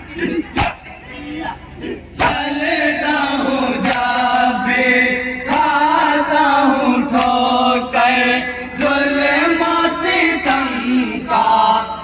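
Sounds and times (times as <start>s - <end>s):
men chanting in unison: 0.1s - 12.0s.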